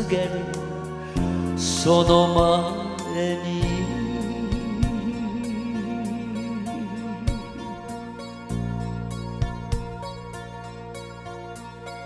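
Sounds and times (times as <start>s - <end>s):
slow ballad backing track: 0.0s - 12.0s.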